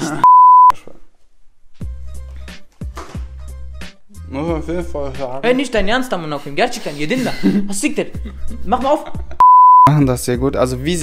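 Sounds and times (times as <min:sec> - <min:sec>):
censor bleep: 0:00.2 - 0:00.8, 0:09.4 - 0:09.9.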